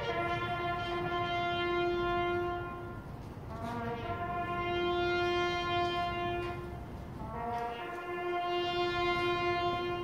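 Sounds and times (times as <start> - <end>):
bugle holding a long note: 0.0 - 10.0.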